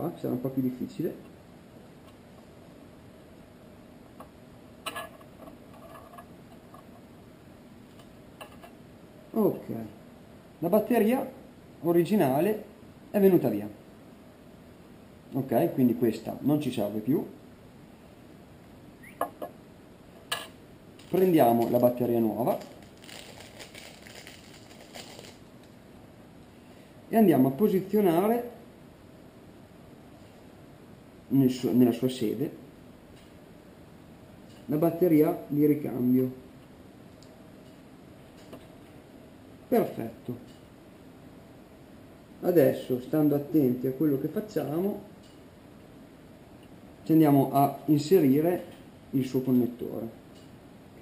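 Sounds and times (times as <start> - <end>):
battery packaging crinkling: 21.0 - 25.8.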